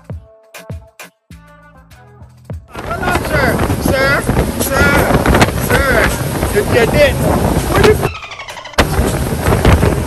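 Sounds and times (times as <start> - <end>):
powerboat running fast: 2.7 - 8.1
water spray rushing: 2.7 - 8.1, 8.8 - 10.0
wind buffeting microphone: 2.7 - 10.0.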